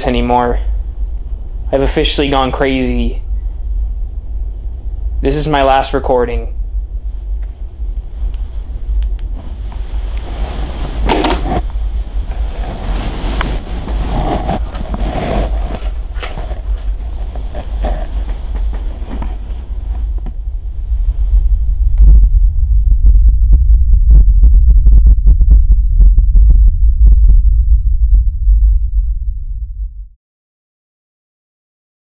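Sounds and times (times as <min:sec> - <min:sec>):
deep low rumble: 0:00.0 - 0:30.2
cloth rustling: 0:09.4 - 0:20.1
camera knocking against shirt: 0:11.0 - 0:11.6.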